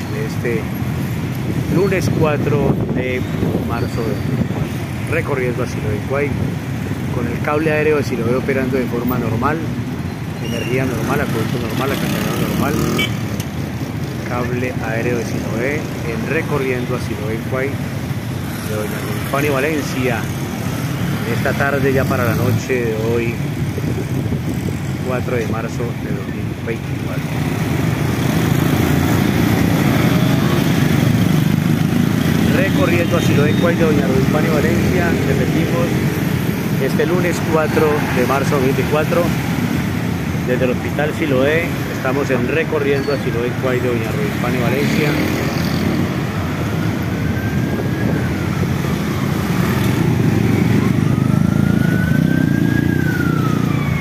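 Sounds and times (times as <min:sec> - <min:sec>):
car and motorcycle engines: 0:00.0 - 0:54.0
street traffic: 0:00.0 - 0:54.0
emergency siren wailing: 0:27.8 - 0:40.4, 0:46.2 - 0:54.0.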